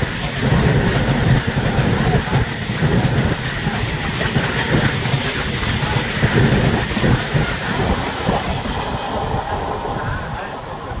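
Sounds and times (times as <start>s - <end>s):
train wheels clattering over rails: 0.0s - 11.0s.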